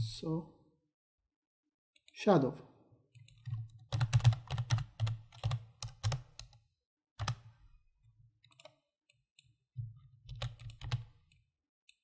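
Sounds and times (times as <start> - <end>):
keyboard typing: 3.2 - 6.6, 7.2 - 7.5, 10.3 - 11.3.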